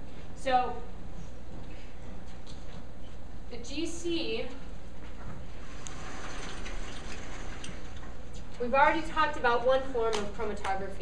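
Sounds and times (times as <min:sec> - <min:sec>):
projector fan hum: 0:00.0 - 0:11.0
room background hiss: 0:00.0 - 0:11.0.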